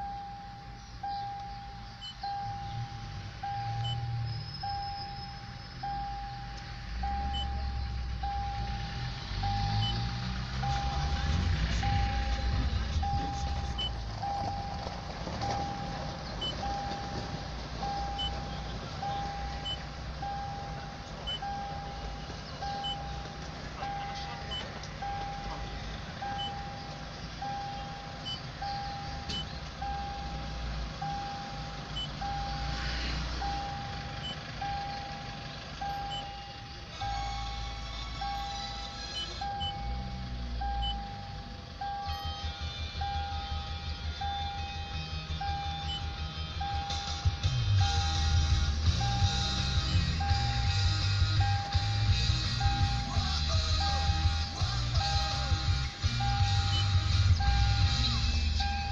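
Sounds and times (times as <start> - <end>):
low cabin rumble: 0.0 - 32.6
car warning chime beeping: 0.0 - 58.9.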